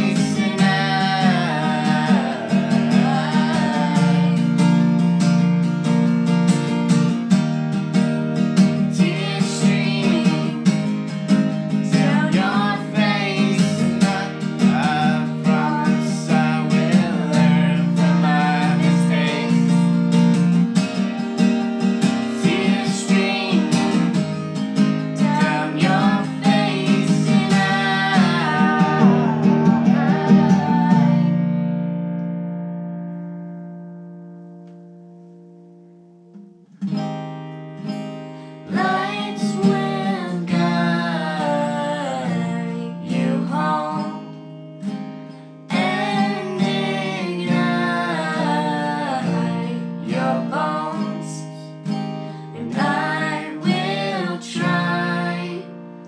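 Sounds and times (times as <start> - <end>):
girl singing: 0.0 - 4.6, 8.9 - 10.7, 11.8 - 19.9, 22.3 - 24.3, 25.2 - 31.3, 38.6 - 44.3, 45.7 - 51.8, 52.4 - 55.8
acoustic guitar strumming: 0.0 - 56.0.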